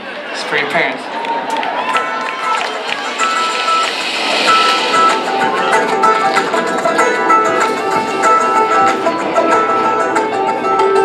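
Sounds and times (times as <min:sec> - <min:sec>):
band playing: 0:02.1 - 0:08.8
electric guitar riff: 0:02.2 - 0:09.3.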